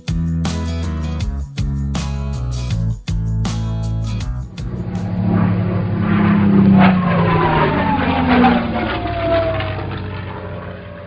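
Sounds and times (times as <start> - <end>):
propeller airplane flying past: 4.0 - 11.0.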